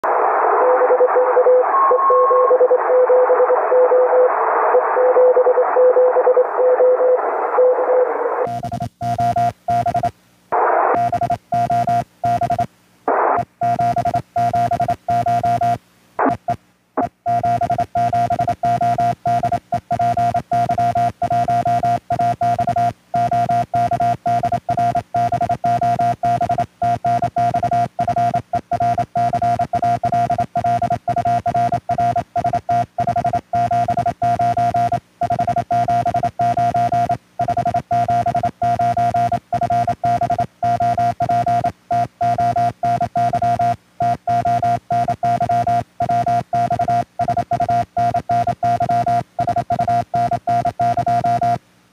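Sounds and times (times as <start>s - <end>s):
faint morse code signal: 0.6s - 10.2s, 11.0s - 12.7s, 13.4s - 51.6s
high-pitched morse sidetone: 1.7s - 2.8s
radio receiver hiss: 10.4s - 11.1s, 12.6s - 13.5s, 15.8s - 17.1s.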